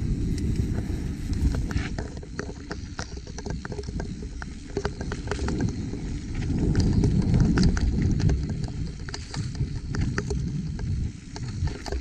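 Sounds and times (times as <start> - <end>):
bike clicks and rattles: 0.0 - 12.0
bike tyres rumbling on dirt: 0.0 - 12.0.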